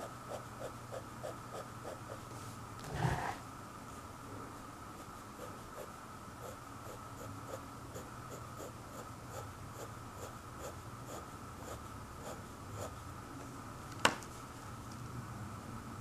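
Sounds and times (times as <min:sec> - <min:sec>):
pen scratching on paper: 0:02.9 - 0:03.4, 0:05.0 - 0:13.0.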